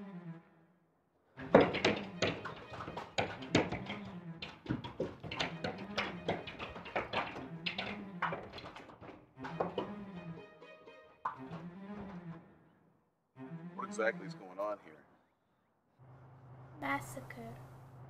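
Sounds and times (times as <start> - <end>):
hands banging on glass doors: 1.5 - 9.9
low bowed strings: 9.4 - 12.5.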